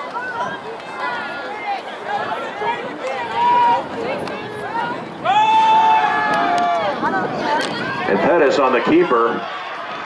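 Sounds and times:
loud long shout: 0.0 - 10.0
voices shouting and calling out: 0.0 - 10.0.

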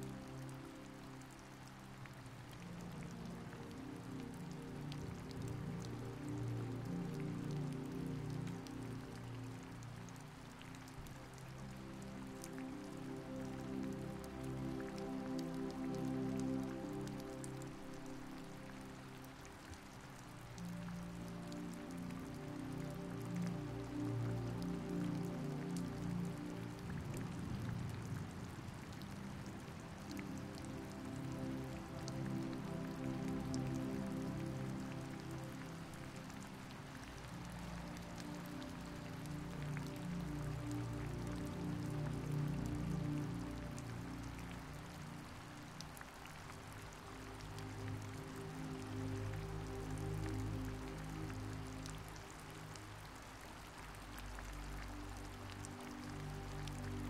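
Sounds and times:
soft music of held chords: 0.0 - 57.0
steady rain falling: 0.0 - 57.0.

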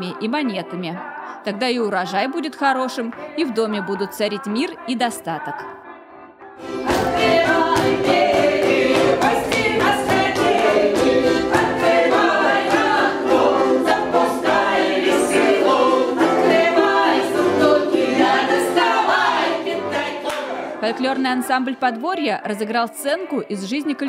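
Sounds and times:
folk choir singing: 3.2 - 21.3
button accordion: 6.6 - 20.3.

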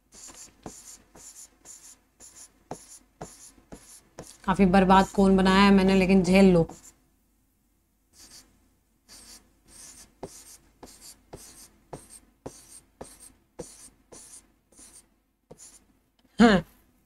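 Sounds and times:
marker scratching on a board: 0.1 - 5.2, 6.6 - 7.0, 8.2 - 8.5, 9.1 - 15.9.

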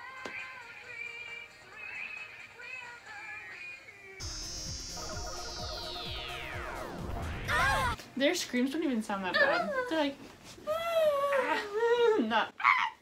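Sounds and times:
upbeat pop song: 0.0 - 8.0
high tone sweeping downward: 4.2 - 8.0.

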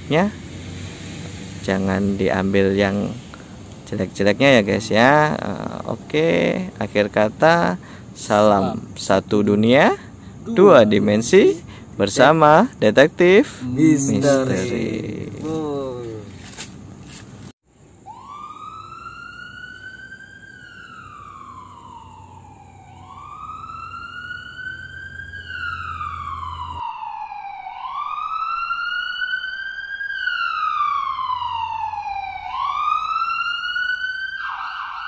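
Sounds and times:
siren wailing: 10.4 - 11.6, 13.4 - 16.2, 18.1 - 35.0
siren rapid warble: 10.5 - 11.6, 18.1 - 35.0.

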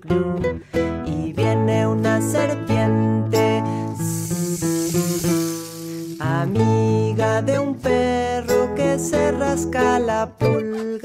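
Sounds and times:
acoustic guitar strumming: 0.0 - 10.1
person singing: 0.0 - 11.0
drawn-out hiss: 3.8 - 6.4.

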